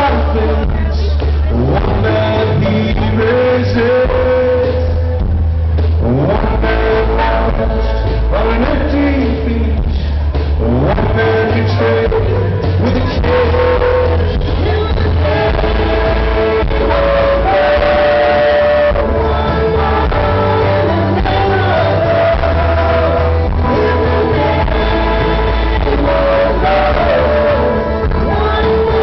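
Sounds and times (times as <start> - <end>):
heavy bass rumble: 0.0 - 29.0
live country band playing: 0.0 - 29.0
man singing: 0.0 - 29.0
two-part vocal harmony: 6.0 - 29.0.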